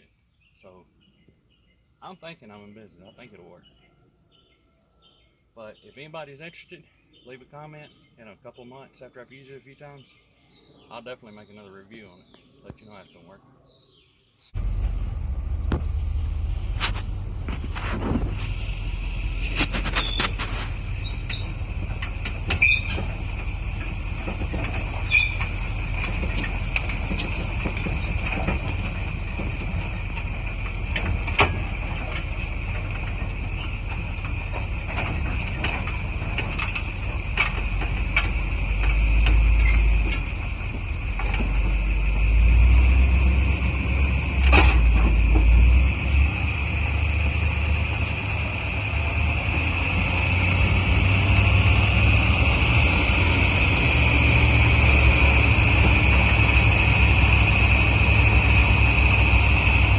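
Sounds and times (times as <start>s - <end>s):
truck engine and road rumble: 14.5s - 59.9s
trailer clicks and knocks: 14.6s - 59.9s.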